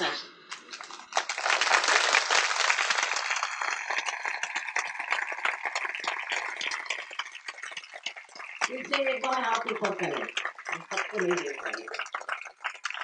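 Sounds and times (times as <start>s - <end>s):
audience clapping: 0.0s - 13.0s.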